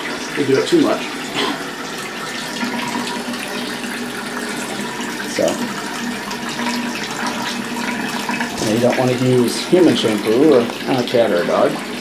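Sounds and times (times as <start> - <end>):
shower water running into bathtub: 0.0 - 12.0.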